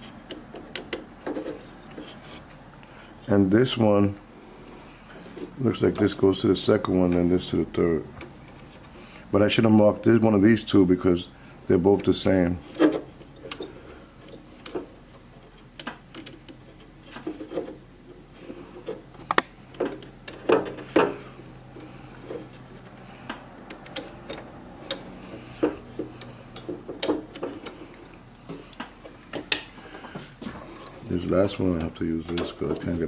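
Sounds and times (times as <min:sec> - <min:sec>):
connectors clicking onto terminals: 0:15.5 - 0:17.2, 0:19.1 - 0:29.8, 0:31.4 - 0:33.0.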